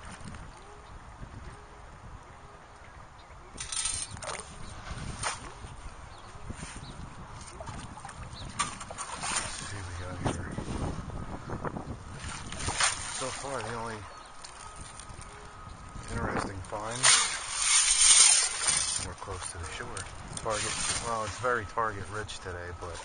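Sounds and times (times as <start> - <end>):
splashing through shallow water: 7.4 - 10.3, 12.1 - 15.2, 16.0 - 21.6.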